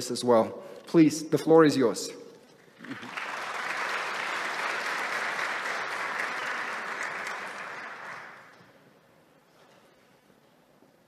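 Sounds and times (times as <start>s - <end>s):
audience applauding: 2.7s - 8.7s.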